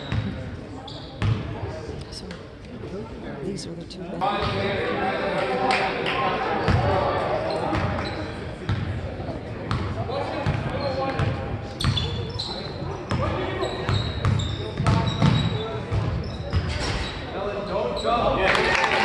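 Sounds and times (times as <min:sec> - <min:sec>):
sneaker squeaks: 0:00.0 - 0:01.5, 0:07.4 - 0:08.8, 0:09.7 - 0:18.3
spectators talking: 0:00.0 - 0:19.0
crowd cheering: 0:18.4 - 0:19.0.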